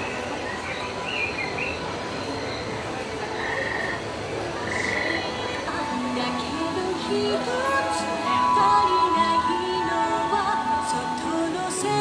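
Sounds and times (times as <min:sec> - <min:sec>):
steady outdoor hum: 0:00.0 - 0:12.0
frogs trilling: 0:00.4 - 0:05.6.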